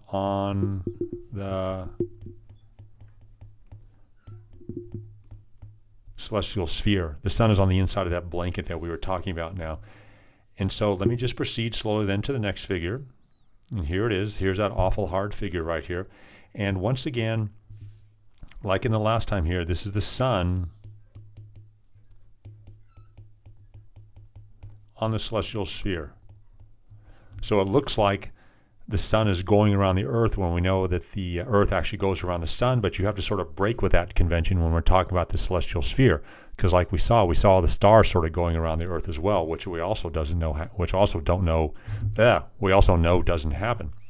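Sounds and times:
stylus tapping on glass screen: 0.6s - 5.8s, 11.0s - 11.4s, 20.8s - 24.9s
faint high-pitched squeak: 4.0s - 4.5s.

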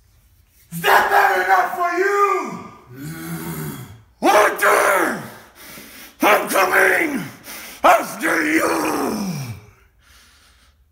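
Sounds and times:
man groaning through clenched teeth: 2.9s - 4.1s.

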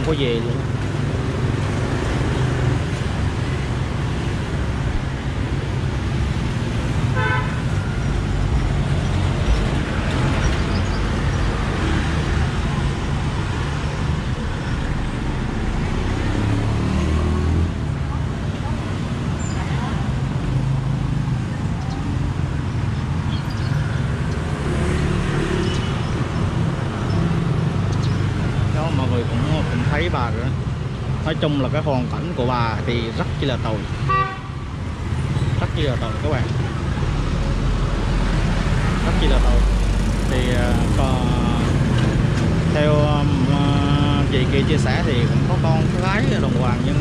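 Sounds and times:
passing traffic: 0.0s - 47.0s.

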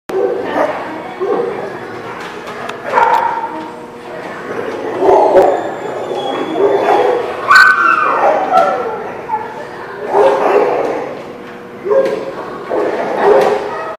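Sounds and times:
dogs barking: 0.1s - 1.7s, 2.8s - 3.7s, 4.7s - 11.2s, 11.8s - 13.9s
dogs growling: 4.1s - 11.3s, 12.1s - 13.9s.

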